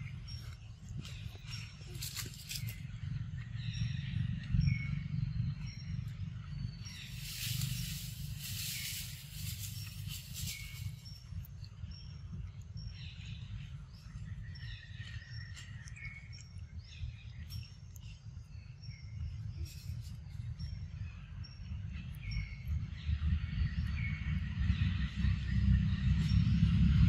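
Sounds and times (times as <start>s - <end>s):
steady low rumble: 0.0s - 27.0s
bird peeping: 6.9s - 11.4s
insects buzzing: 7.0s - 11.2s.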